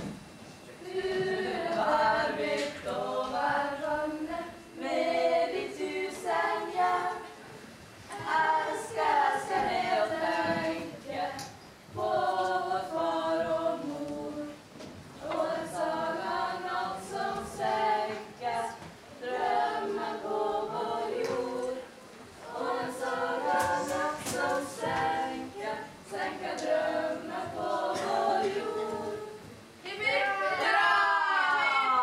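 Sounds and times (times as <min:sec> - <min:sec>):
children's choir singing: 0:00.7 - 0:32.0.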